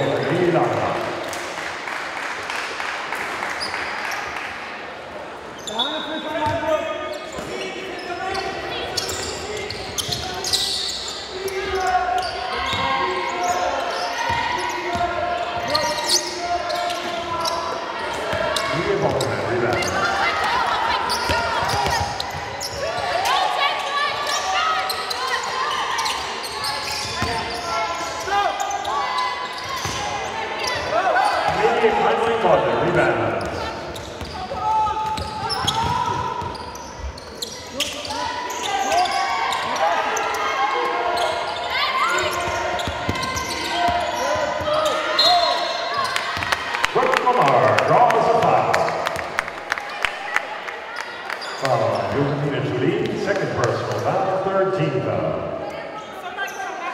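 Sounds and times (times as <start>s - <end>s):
voices in echoing hall: 0.0s - 56.9s
basketball bouncing on wooden court: 35.0s - 36.6s.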